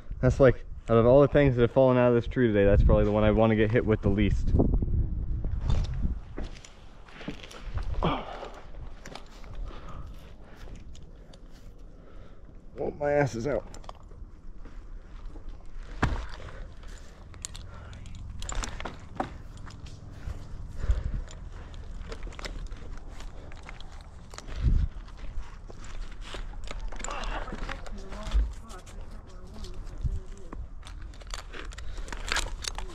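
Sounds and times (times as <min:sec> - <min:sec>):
climbing gear knocks and scrapes: 0:15.8 - 0:32.9.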